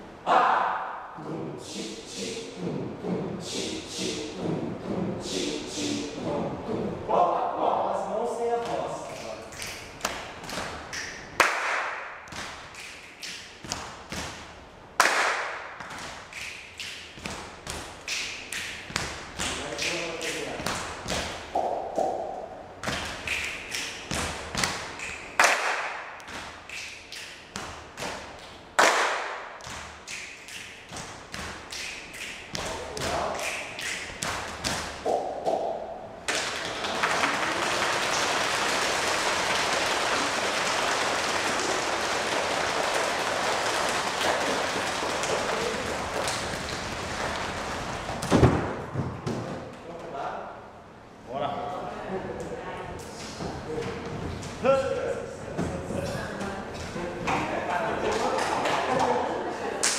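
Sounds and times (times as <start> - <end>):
short vocal sounds: 0.2 - 7.4
hand claps and chest slaps: 8.6 - 48.8.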